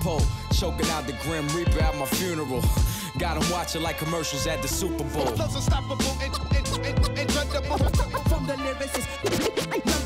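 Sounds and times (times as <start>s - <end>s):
hip-hop beat: 0.0s - 10.0s
turntable scratching: 5.1s - 10.0s.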